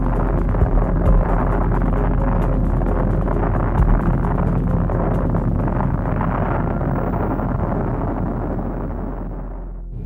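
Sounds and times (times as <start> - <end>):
deep rumbling blast roar: 0.0 - 10.0.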